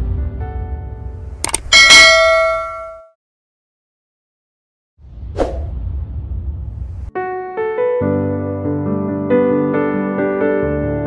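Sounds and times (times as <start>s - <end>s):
bright metallic bell chime: 1.7s - 3.1s.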